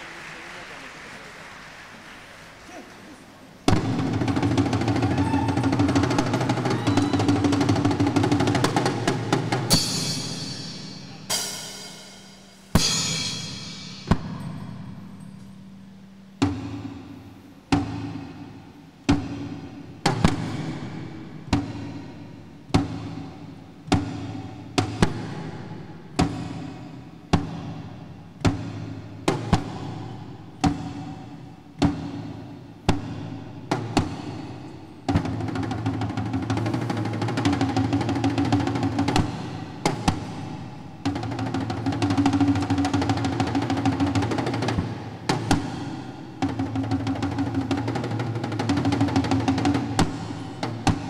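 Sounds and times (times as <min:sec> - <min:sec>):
frame drum struck with beater: 0:03.6 - 0:51.0.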